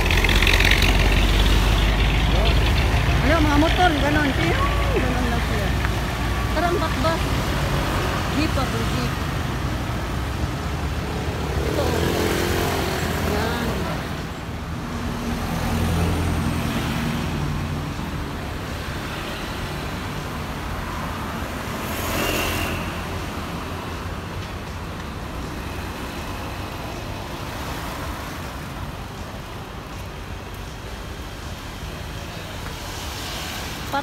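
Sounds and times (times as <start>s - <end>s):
motorbikes passing: 0.0s - 29.7s
cars passing: 0.0s - 34.0s.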